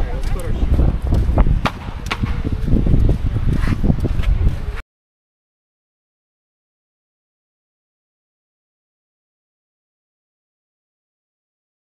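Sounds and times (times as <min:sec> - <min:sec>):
low rumbling on microphone: 0:00.0 - 0:04.8.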